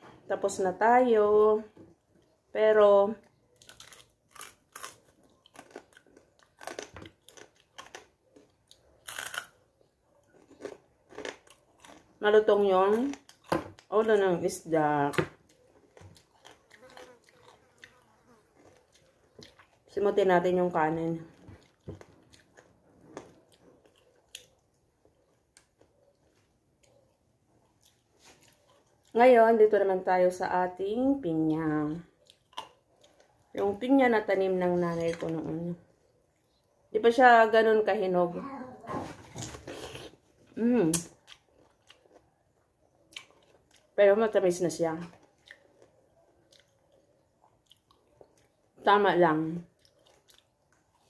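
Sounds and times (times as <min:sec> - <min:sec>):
person chewing crunchy food: 0:03.5 - 0:12.2, 0:13.0 - 0:13.9, 0:15.4 - 0:19.9, 0:21.3 - 0:29.2, 0:32.2 - 0:33.5, 0:39.4 - 0:40.4, 0:41.1 - 0:44.0, 0:45.1 - 0:48.7, 0:49.7 - 0:51.0.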